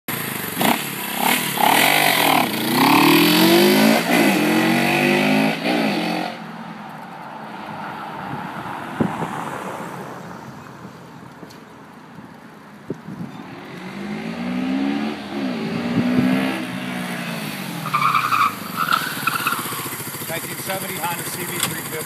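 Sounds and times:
motorcycle engine accelerating: 0.1s - 6.4s, 13.5s - 17.9s, 18.5s - 22.0s.

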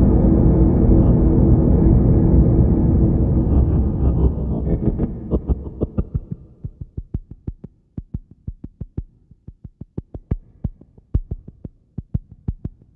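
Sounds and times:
music: 0.0s - 12.9s
synthesizer percussive hits: 2.2s - 7.0s.

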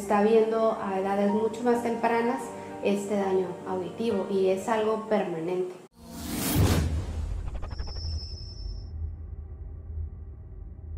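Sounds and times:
whoosh: 6.0s - 10.9s.

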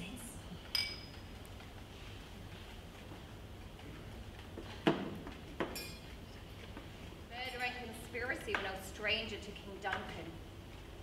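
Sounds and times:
woman speaking: 0.0s - 0.5s, 7.3s - 10.4s.

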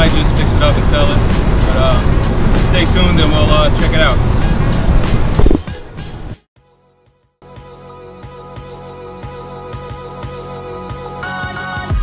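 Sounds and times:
car road noise: 0.0s - 6.4s
music with steady beat: 4.4s - 6.4s, 7.1s - 12.0s.

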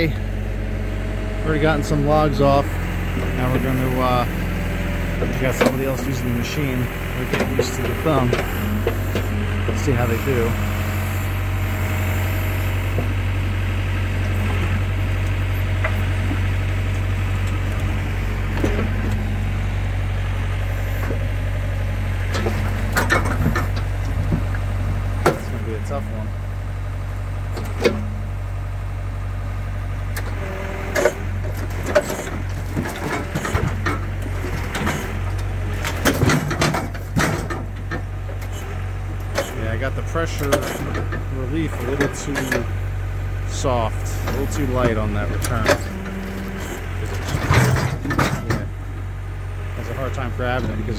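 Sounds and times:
diesel engine running: 0.0s - 50.9s
knocks and clunks of logs: 2.1s - 26.2s, 27.5s - 28.3s, 30.1s - 42.9s, 43.9s - 50.9s.

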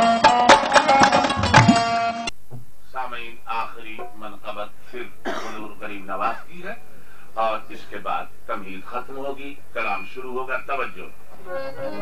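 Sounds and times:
man speaking in hoarse voice: 2.9s - 6.8s, 7.4s - 11.2s.

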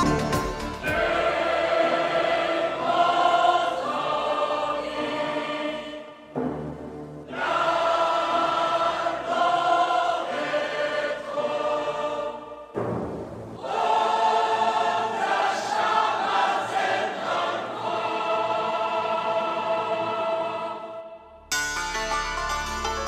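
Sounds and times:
choir singing sustained chords: 0.0s - 23.0s.

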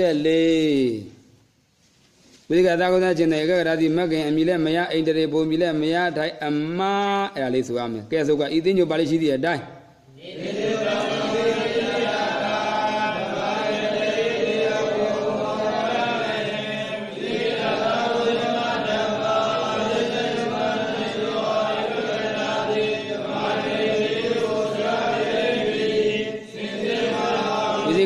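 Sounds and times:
person chanting: 10.1s - 28.0s.

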